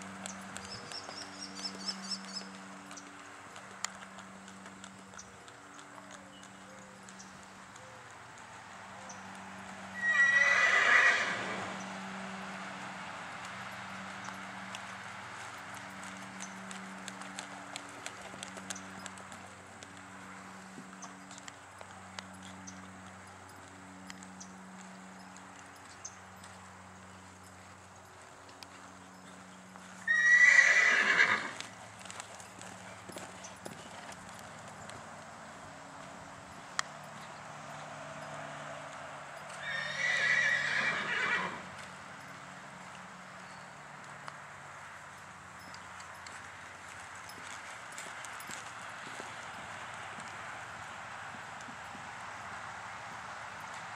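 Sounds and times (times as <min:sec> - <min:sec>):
soft hoofbeats on sand: 0:00.0 - 0:53.9
horse whinnies: 0:10.0 - 0:11.7, 0:30.1 - 0:31.6, 0:39.6 - 0:41.6.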